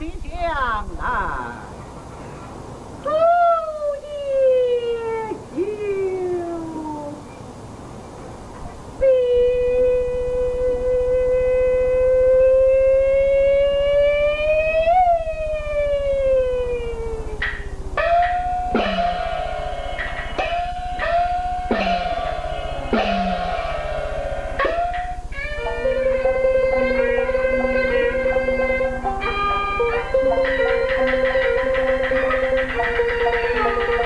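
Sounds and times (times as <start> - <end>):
opera singer holding a gliding note: 9.0 - 34.0
gongs and cymbals struck: 18.0 - 34.0.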